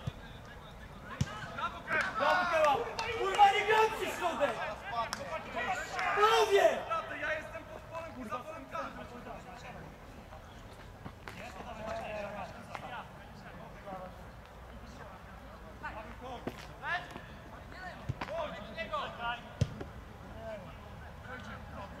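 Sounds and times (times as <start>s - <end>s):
football players shouting: 1.2s - 7.9s.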